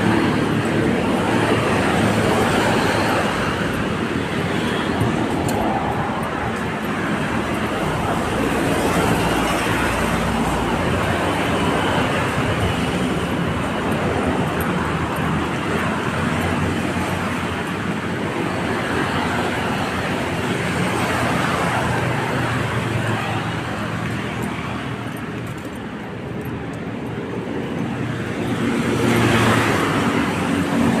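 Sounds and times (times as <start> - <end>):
road traffic noise: 0.0 - 31.0.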